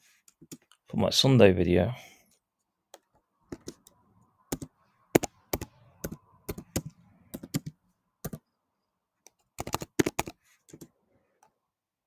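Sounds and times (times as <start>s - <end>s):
typing on computer keyboard: 4.5s - 8.4s, 9.3s - 10.9s.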